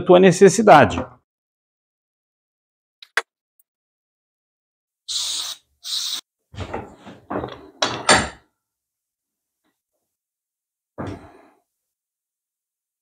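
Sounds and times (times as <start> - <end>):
aerosol spray can hissing: 5.1 - 6.2
clamp parts knocking and rattling: 6.6 - 8.4.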